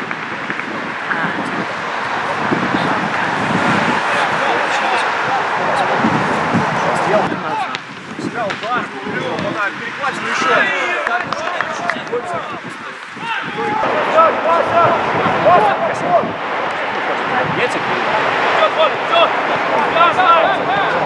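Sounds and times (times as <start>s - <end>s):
distant people shouting: 0.0s - 21.0s.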